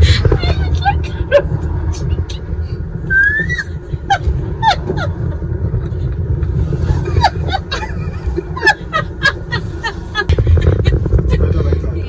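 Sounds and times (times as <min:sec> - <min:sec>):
car rumble: 0:00.0 - 0:12.0
people laughing: 0:06.9 - 0:11.0.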